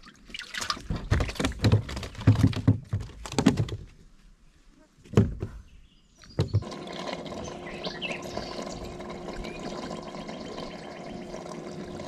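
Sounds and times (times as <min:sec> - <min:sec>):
hollow thunks on a plastic kayak: 0:00.9 - 0:04.0, 0:05.0 - 0:05.7, 0:06.4 - 0:06.7.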